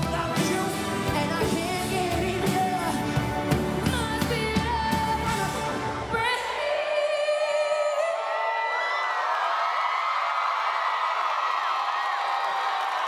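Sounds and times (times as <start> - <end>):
crowd cheering and screaming: 6.6 - 13.0.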